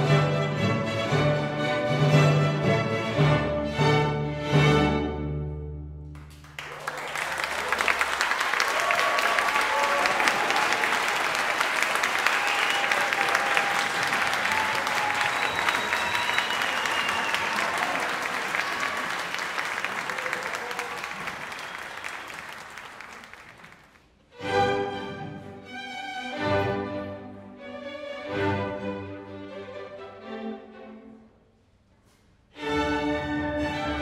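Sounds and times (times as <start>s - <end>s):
audience applauding: 6.2s - 24.0s.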